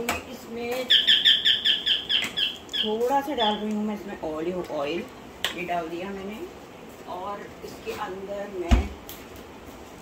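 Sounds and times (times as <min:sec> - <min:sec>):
bird chirping: 0:00.8 - 0:03.8.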